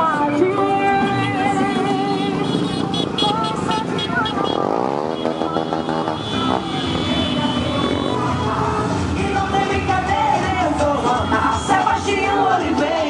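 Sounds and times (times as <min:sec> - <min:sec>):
motorcycles passing: 0:00.0 - 0:13.0
music: 0:00.0 - 0:13.0
voices: 0:00.0 - 0:13.0.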